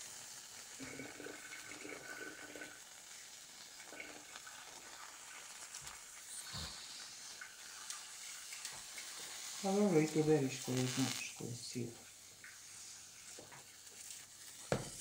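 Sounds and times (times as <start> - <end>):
mushrooms sizzling on foil: 0.0 - 15.0
soft knock: 14.7 - 15.0.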